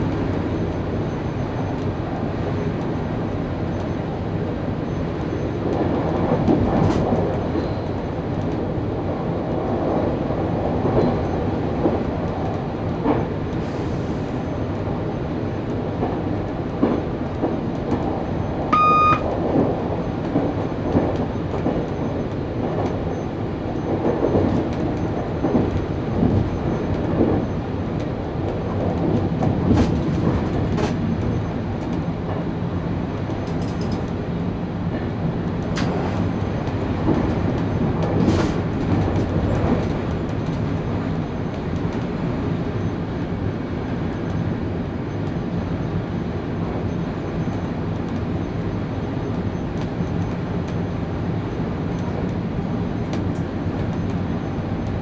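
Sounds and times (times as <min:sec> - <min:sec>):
train wheels rumbling on rails: 0:00.0 - 0:55.0
short electronic beep: 0:18.7 - 0:19.2
clatter over rail joints: 0:23.9 - 0:32.5, 0:34.9 - 0:41.0.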